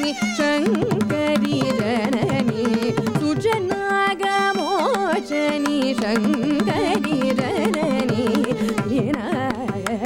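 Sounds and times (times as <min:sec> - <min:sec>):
violin: 0:00.0 - 0:10.0
woman singing ornamented melody: 0:00.0 - 0:10.0.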